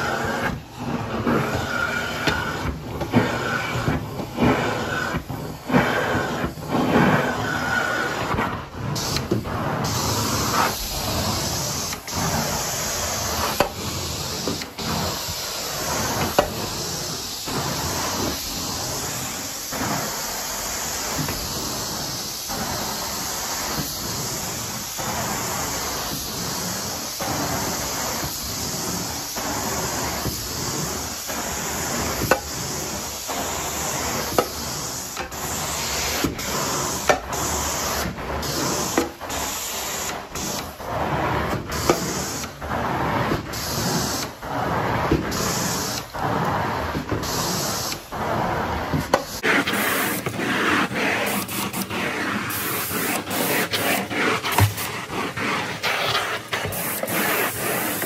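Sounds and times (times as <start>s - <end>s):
carpet cleaner wand hissing: 0.0s - 58.0s.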